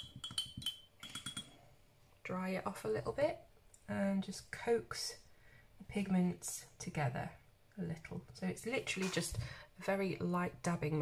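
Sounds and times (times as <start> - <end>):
paintbrush clinking against glass: 0.0 - 1.6.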